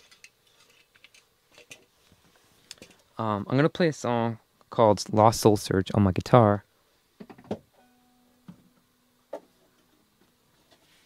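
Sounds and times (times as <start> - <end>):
guitar string ringing: 7.8 - 8.8.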